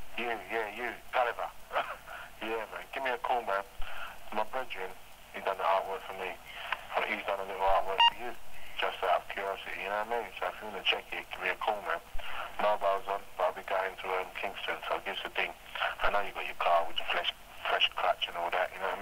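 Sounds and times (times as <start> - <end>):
man talking over telephone: 0.2 - 19.0.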